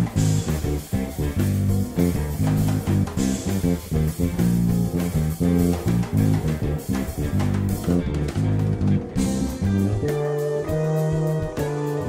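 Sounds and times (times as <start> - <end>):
backing track with drums: 0.0 - 12.0
bass guitar playing quick notes: 0.0 - 12.0.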